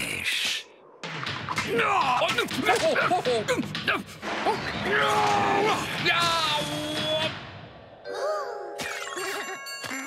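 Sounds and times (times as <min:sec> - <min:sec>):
bell-like dings: 0:08.9 - 0:10.0.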